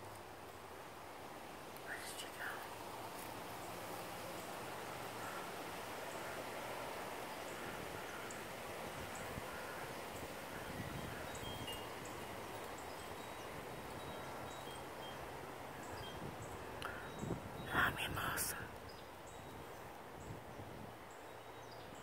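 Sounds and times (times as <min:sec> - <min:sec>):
breeze in leafy trees: 0:00.0 - 0:22.0
faint chiming tones: 0:11.2 - 0:16.3.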